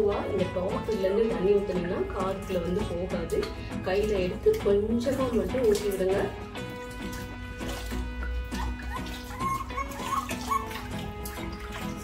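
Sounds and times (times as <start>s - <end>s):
background music: 0.0s - 12.0s
water splashing in a plastic tub: 0.0s - 12.0s.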